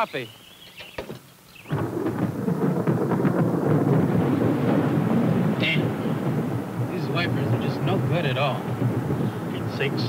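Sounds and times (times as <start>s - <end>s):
low thunder rumble: 1.6s - 10.0s
heavy rain: 1.7s - 10.0s.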